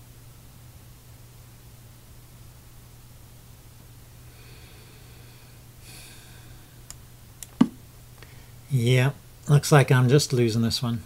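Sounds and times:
low steady hum: 0.0 - 11.0
nasal breathing: 4.2 - 6.9.

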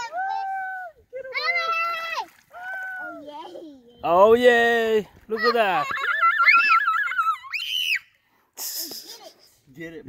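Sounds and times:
child squealing excitedly: 0.0 - 3.5, 5.4 - 8.1.

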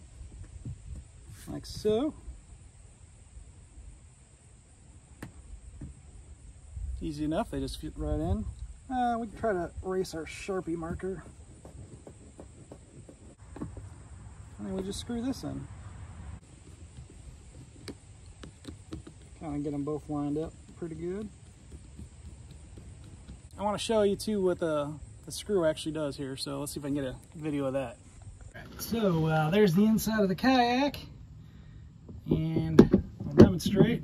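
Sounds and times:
outdoor background noise: 0.0 - 34.0
plastic paddle holder against hull: 16.7 - 19.4, 32.0 - 34.0.

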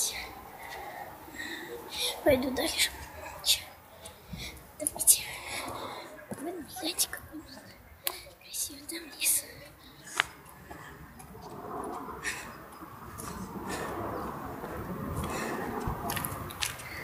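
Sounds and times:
girl whispering: 4.8 - 9.8.

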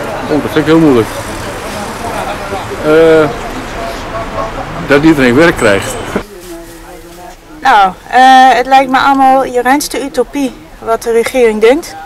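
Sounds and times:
outdoor hiss and rumble: 0.0 - 12.0.

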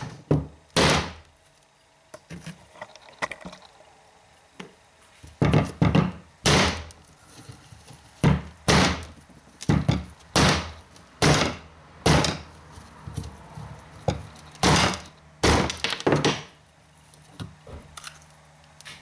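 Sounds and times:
hatchet striking coconut: 0.4 - 1.2, 5.5 - 6.9, 8.2 - 9.1, 9.7 - 12.5, 14.6 - 16.5.

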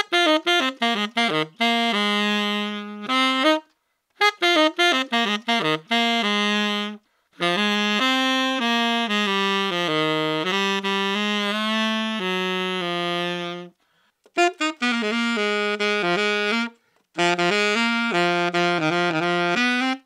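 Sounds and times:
tenor saxophone playing: 0.0 - 20.0.

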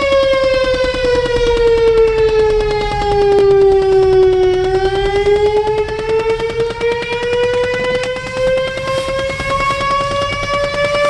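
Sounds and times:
fire siren wailing: 0.0 - 11.0.

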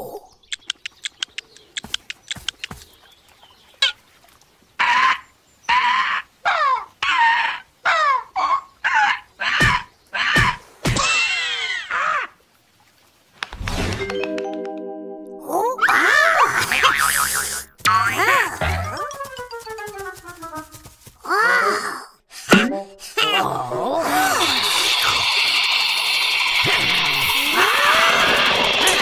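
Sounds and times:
cartoon chicken clucking: 15.9 - 19.6.

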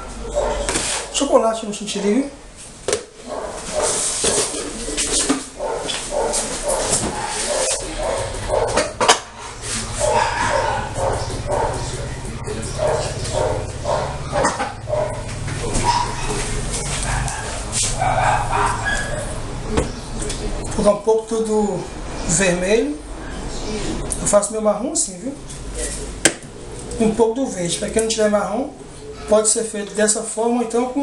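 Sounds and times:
dog barking and yipping: 0.0 - 1.2, 3.2 - 4.6, 5.5 - 19.4
steady low hum: 2.0 - 29.3.

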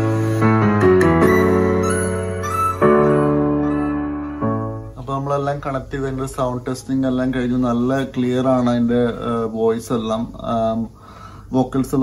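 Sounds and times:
sustained keyboard chords: 0.0 - 6.0.

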